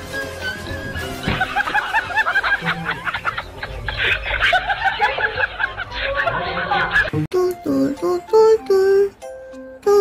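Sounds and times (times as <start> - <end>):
background music: 0.0 - 3.1, 7.1 - 10.0.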